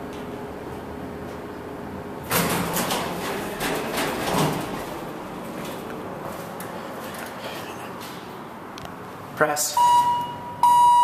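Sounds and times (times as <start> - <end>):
elevator doors sliding open: 1.4 - 8.3.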